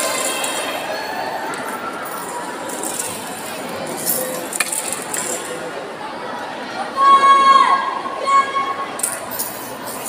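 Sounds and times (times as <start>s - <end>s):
crowd murmur: 0.0s - 10.0s
loud held shout: 6.8s - 8.9s.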